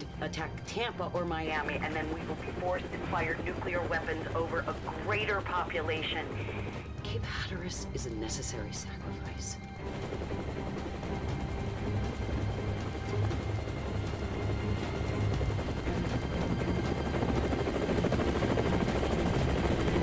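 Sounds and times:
helicopter engine and rotor noise: 0.0s - 20.0s.

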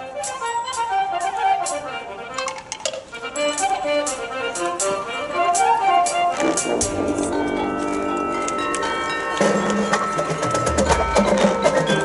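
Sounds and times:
marching band playing: 0.0s - 12.0s
low brass and bass notes: 3.1s - 9.8s
struck percussion notes ringing: 3.3s - 12.0s
winds holding sustained chords: 6.7s - 10.5s.

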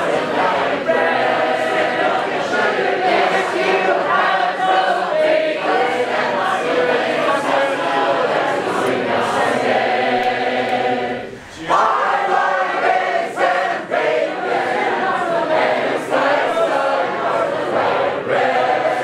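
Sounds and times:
crowd singing a round: 0.0s - 19.0s.

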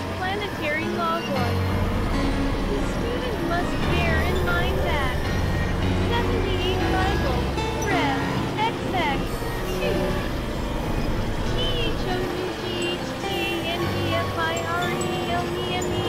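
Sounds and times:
low synthesizer drone: 0.0s - 16.0s
synthesizer chirping tones: 0.0s - 16.0s.

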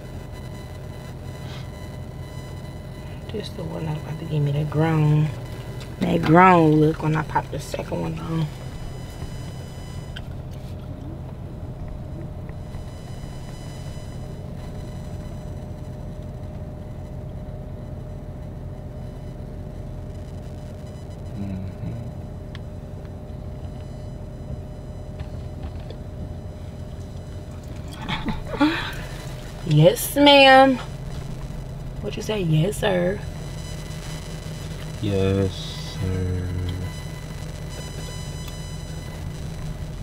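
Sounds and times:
faint steady tones: 0.0s - 40.0s
low hum and rumble in car cabin: 0.0s - 40.0s.

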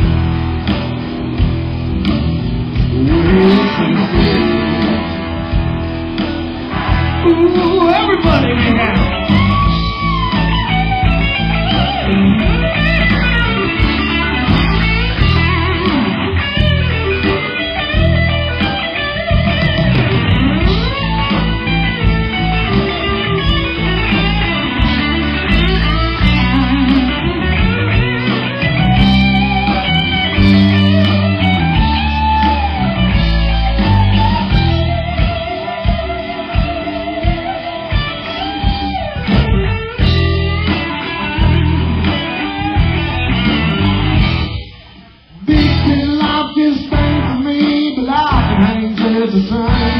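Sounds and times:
lead guitar bending notes: 0.0s - 49.9s
rock band playing: 0.0s - 49.9s.

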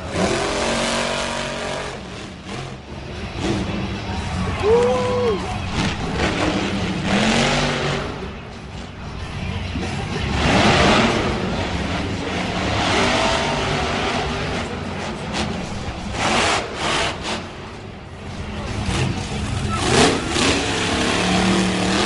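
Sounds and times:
truck engine revving hard: 0.0s - 4.8s, 5.6s - 8.4s, 9.8s - 22.0s
arena crowd noise: 0.0s - 22.0s.

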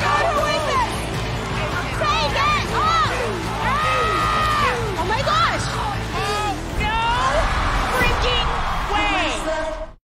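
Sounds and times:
people screaming and whooping: 2.1s - 5.1s.

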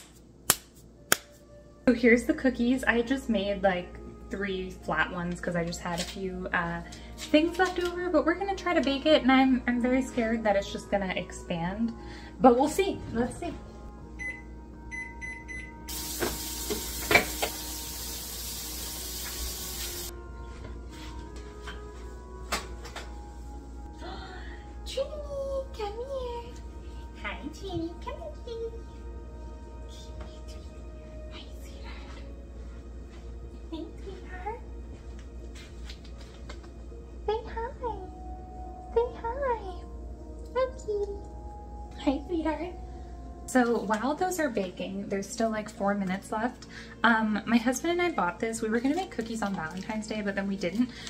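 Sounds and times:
microwave keypad beeps: 14.2s - 15.8s
hiss: 15.9s - 20.1s.

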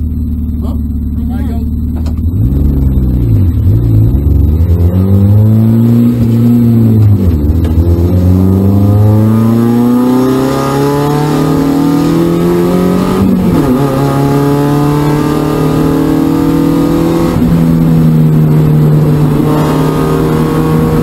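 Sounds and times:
car engine accelerating: 0.0s - 21.0s.

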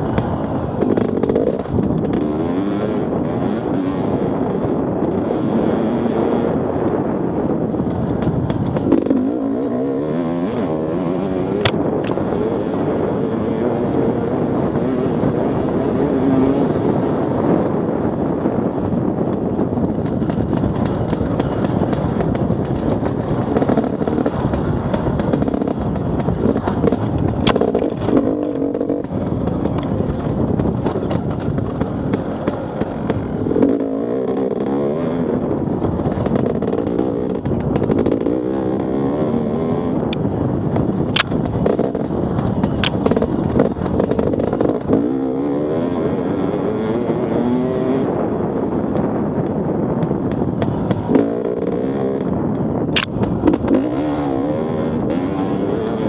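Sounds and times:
bike rattling over ground: 0.0s - 4.1s, 7.7s - 16.7s, 19.0s - 56.0s
dirt bike engine revving: 0.0s - 56.0s.

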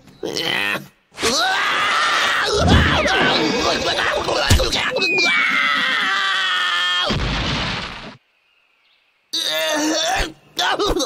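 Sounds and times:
heavy crash: 2.5s - 5.0s, 7.1s - 8.2s
falling whistle: 4.8s - 6.4s.

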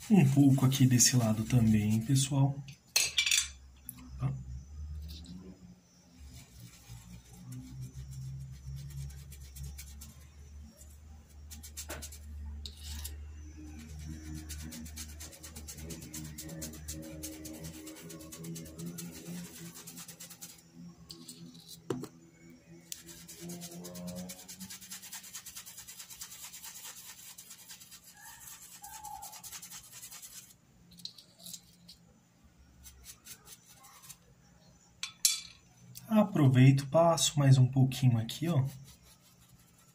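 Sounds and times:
paintbrush scrubbing cloth: 0.0s - 2.5s, 6.2s - 20.6s, 22.9s - 30.6s, 32.8s - 34.2s, 37.9s - 39.9s.

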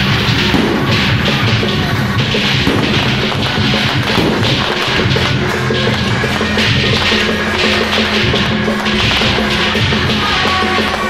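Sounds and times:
firecrackers crackling: 0.0s - 11.0s
loud music: 0.0s - 11.0s.

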